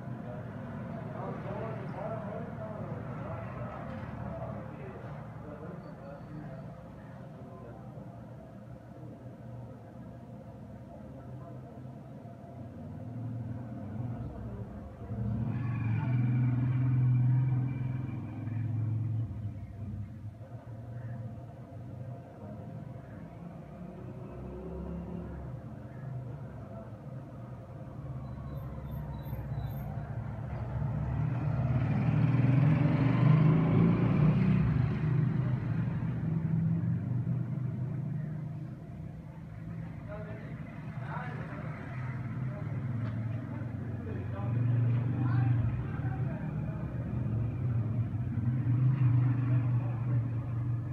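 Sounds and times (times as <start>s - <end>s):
vehicle engine passing by: 13.1s - 20.2s, 27.8s - 50.9s.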